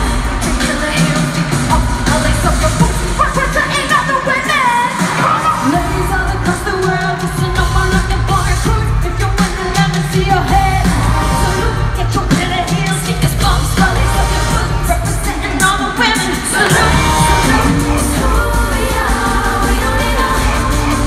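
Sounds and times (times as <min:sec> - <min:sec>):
backing track with heavy bass: 0:00.0 - 0:21.0
female group vocals: 0:00.0 - 0:21.0.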